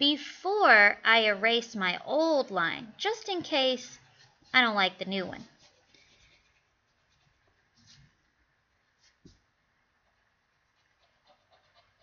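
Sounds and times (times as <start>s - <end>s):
pencil scratching on paper: 10.6s - 12.0s.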